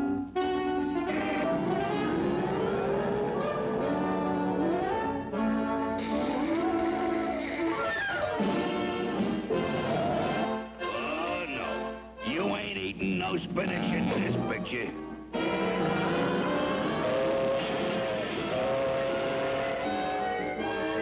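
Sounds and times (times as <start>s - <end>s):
orchestral cartoon music with brass: 0.0s - 21.0s.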